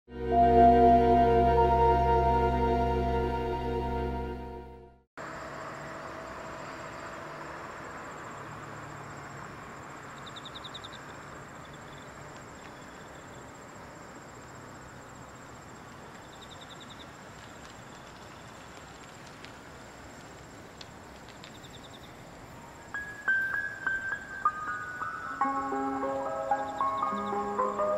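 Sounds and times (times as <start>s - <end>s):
insects chirping: 5.2s - 27.9s.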